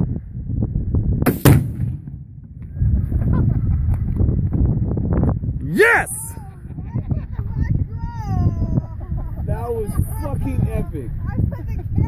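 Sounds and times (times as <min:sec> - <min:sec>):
low rumbling: 0:00.0 - 0:09.4
rifle shot: 0:01.2 - 0:02.7
explosion boom: 0:01.2 - 0:03.2.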